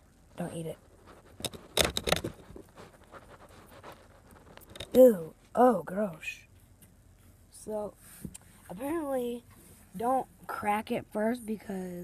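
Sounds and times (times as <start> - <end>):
faint scrapes and clicks: 0.4 - 5.0.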